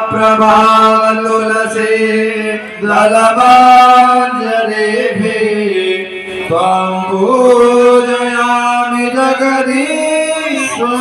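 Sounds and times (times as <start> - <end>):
devotional chanting over loudspeaker: 0.0 - 11.0.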